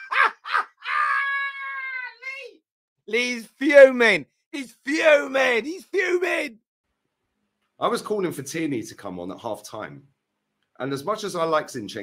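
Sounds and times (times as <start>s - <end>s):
man squealing with laughter: 0.0s - 1.9s.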